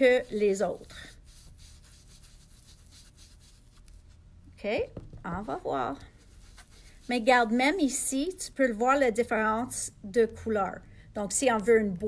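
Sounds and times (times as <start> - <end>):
foam tool brushing on cardstock: 0.0 - 4.2, 5.4 - 8.0.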